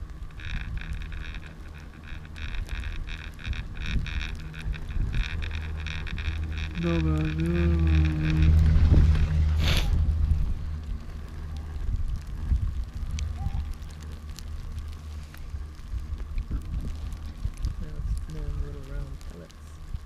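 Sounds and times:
wind rumble on microphone: 0.0s - 20.0s.

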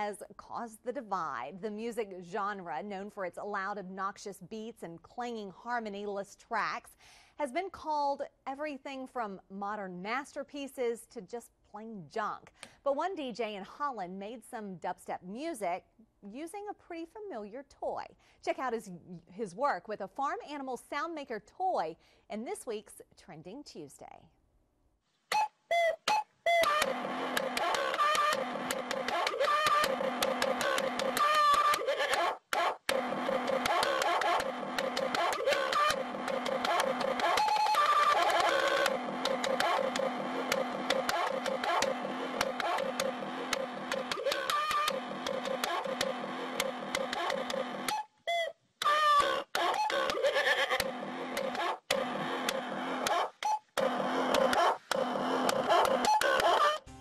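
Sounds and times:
dubstep music with toy samples: 25.3s - 57.0s.

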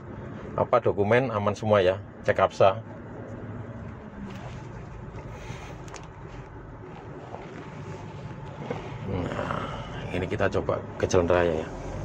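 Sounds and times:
diesel engine hum: 0.0s - 12.0s
road noise: 0.0s - 12.0s.

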